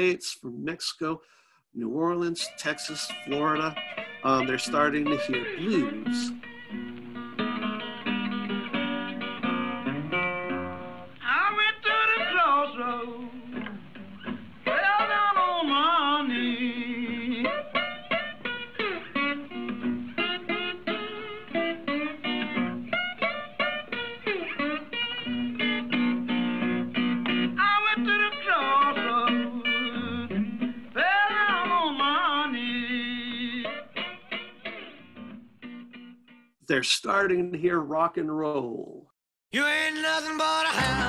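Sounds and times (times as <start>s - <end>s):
person singing blues: 0.0s - 6.5s, 11.1s - 19.6s, 27.3s - 34.6s, 39.5s - 41.0s
acoustic guitar picking: 1.9s - 36.5s, 39.6s - 41.0s.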